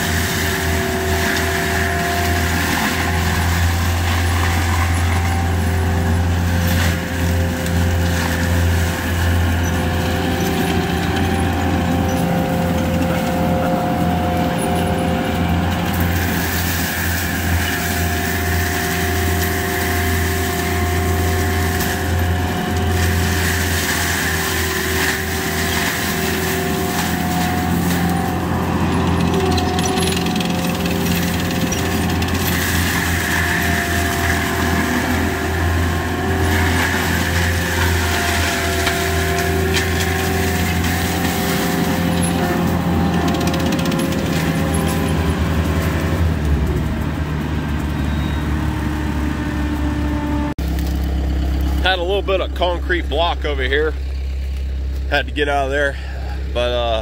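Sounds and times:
diesel engine running hard: 0:00.0 - 0:57.0
drum mulcher grinding brush: 0:00.0 - 0:57.0.

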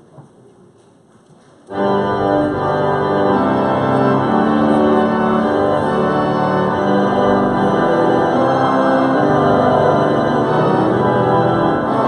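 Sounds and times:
pipe organ chords: 0:01.7 - 0:12.0.

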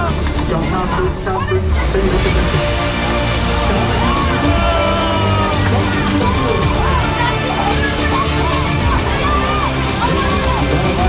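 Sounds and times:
background music: 0:00.0 - 0:11.0
crowd voices: 0:00.0 - 0:11.0.

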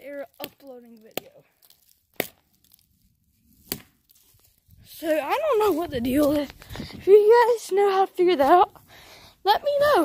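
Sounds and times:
sharp crackles: 0:00.0 - 0:10.0.

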